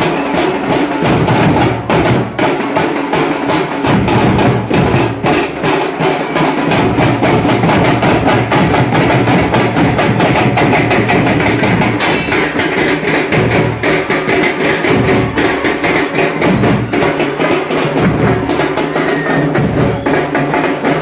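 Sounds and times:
drums keeping fast beat: 0:00.0 - 0:21.0.

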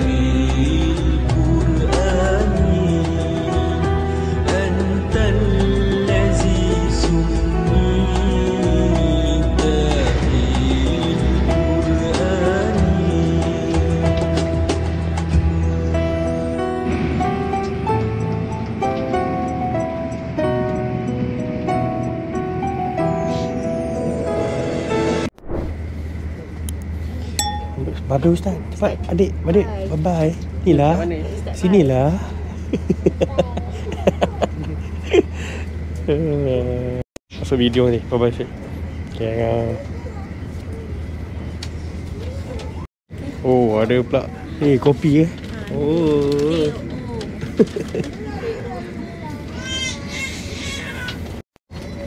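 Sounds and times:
train carriage hum: 0:00.0 - 0:52.0
passengers chattering: 0:26.3 - 0:36.0, 0:37.7 - 0:52.0
sharp ringing clink: 0:27.4 - 0:28.0.

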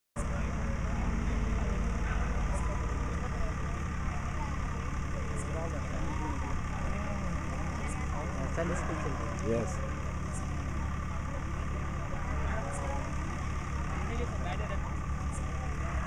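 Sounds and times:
chatter of many voices: 0:00.2 - 0:16.0
steady low hum: 0:00.2 - 0:16.0.

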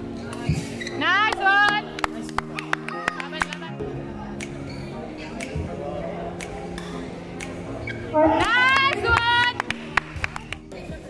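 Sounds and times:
background music: 0:00.0 - 0:11.0
shoes squeaking on court floor: 0:00.4 - 0:01.0, 0:04.6 - 0:05.0, 0:07.8 - 0:08.1.

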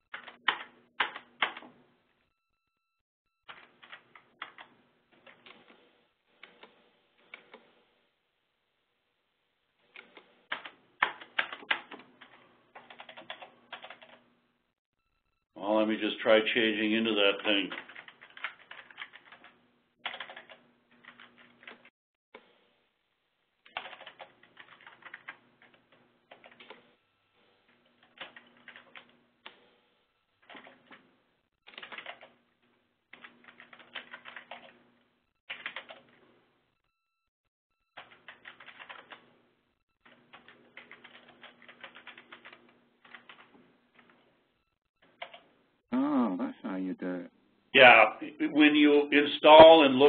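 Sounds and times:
faint keyboard typing: 0:00.0 - 0:01.8, 0:03.5 - 0:07.7, 0:09.8 - 0:14.3, 0:17.2 - 0:21.9, 0:23.6 - 0:26.9, 0:27.7 - 0:29.6, 0:30.4 - 0:31.1, 0:31.7 - 0:32.4, 0:33.1 - 0:34.8, 0:35.5 - 0:36.3, 0:37.9 - 0:39.3, 0:40.0 - 0:44.3, 0:45.0 - 0:45.5.

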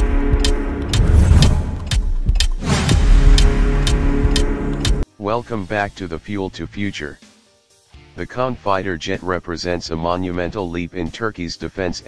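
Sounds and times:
deep rumbling effect: 0:00.0 - 0:05.0
intro music with steady beat: 0:00.0 - 0:05.1.

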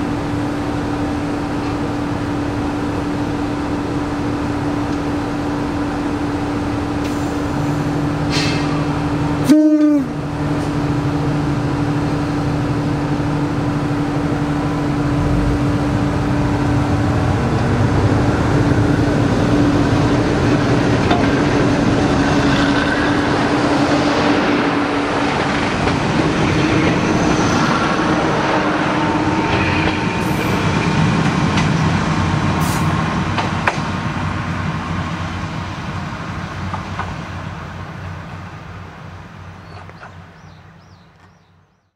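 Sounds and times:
diesel railcar engine: 0:00.0 - 0:41.9
train horn blast: 0:09.4 - 0:10.2.

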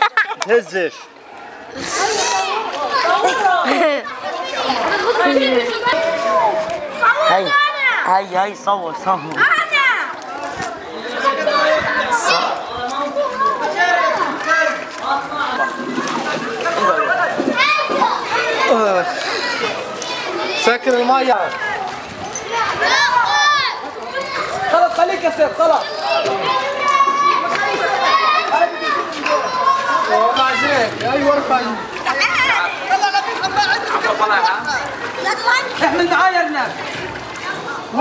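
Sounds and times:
children talking and calling out: 0:00.0 - 0:38.0.

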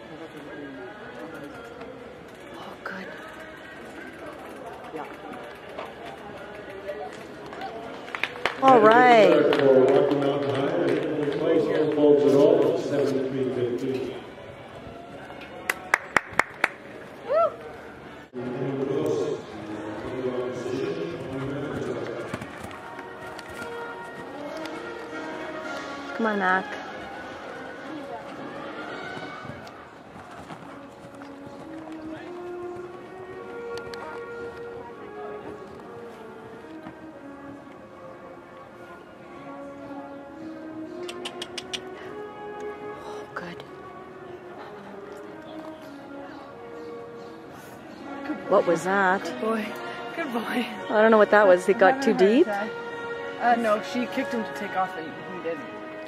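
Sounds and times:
distant crowd chatter: 0:00.0 - 0:56.0
murmur of spectators talking: 0:00.0 - 0:56.0
music over public address system: 0:00.0 - 0:56.0.

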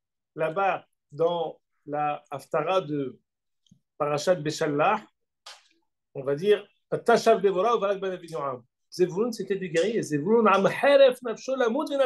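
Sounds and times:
man speaking: 0:00.3 - 0:03.3, 0:04.0 - 0:05.2, 0:06.1 - 0:12.0.

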